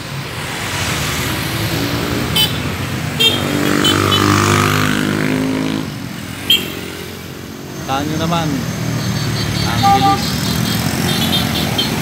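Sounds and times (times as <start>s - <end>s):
motorcycle and car engines passing: 0.0s - 12.0s.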